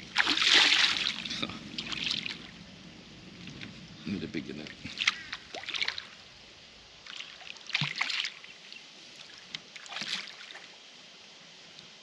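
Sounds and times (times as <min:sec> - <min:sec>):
water splashing: 0:00.0 - 0:02.6, 0:04.5 - 0:06.3, 0:07.0 - 0:10.8.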